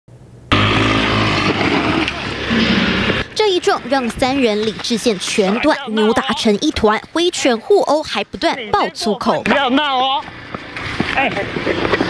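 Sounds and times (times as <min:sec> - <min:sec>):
motor scooter engine running: 0:00.5 - 0:06.3, 0:09.6 - 0:12.0.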